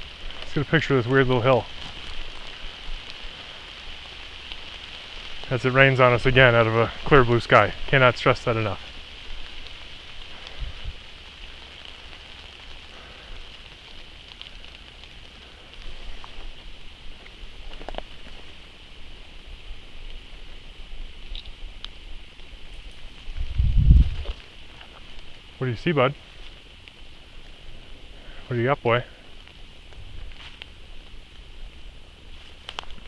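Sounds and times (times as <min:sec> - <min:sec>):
light rain pattering on leaves: 0:00.0 - 0:33.0
low rumble on microphone: 0:08.8 - 0:28.4.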